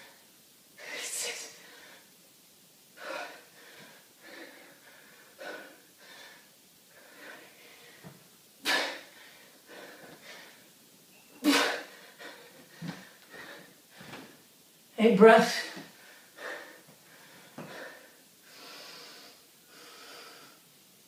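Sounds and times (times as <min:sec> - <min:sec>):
man breathing hard: 0:03.0 - 0:10.6, 0:11.6 - 0:14.4, 0:15.9 - 0:20.6.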